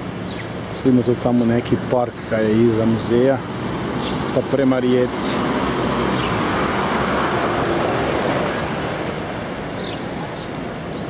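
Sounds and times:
vehicles going by: 0.0s - 11.0s.

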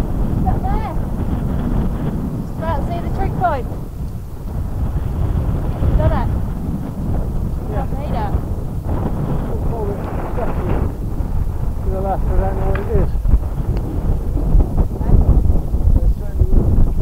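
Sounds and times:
voices: 0.0s - 16.9s
wind buffeting microphone: 0.0s - 17.0s.

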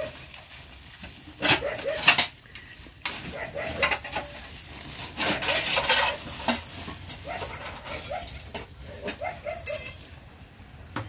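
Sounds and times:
plastic bag crinkling: 0.0s - 8.8s.

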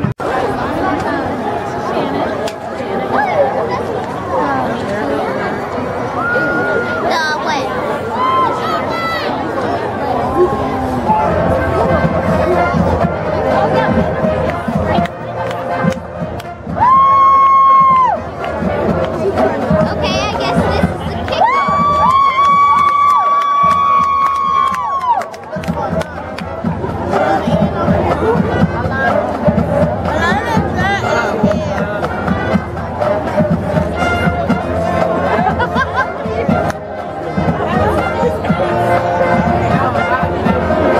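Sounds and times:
crowd chatter and cheering: 0.0s - 40.9s
marching band playing: 10.3s - 40.9s.

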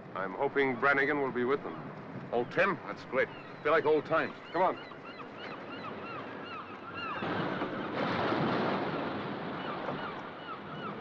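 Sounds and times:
seabirds calling: 0.0s - 11.0s.

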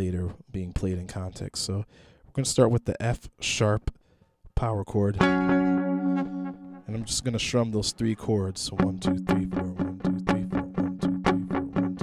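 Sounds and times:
electric guitar strumming chords: 5.2s - 7.0s, 8.8s - 12.0s.

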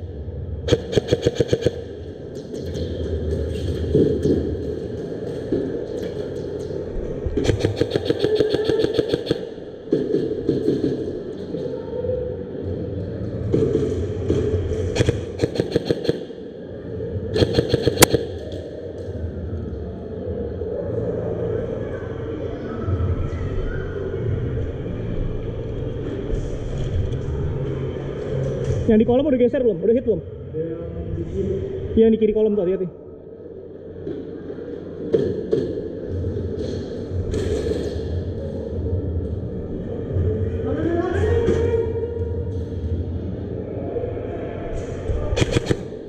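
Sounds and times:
steady low hum: 0.0s - 32.1s
airsoft guns firing bursts: 0.7s - 1.8s, 7.4s - 9.5s, 15.0s - 16.3s, 17.4s - 18.4s, 45.4s - 45.9s.

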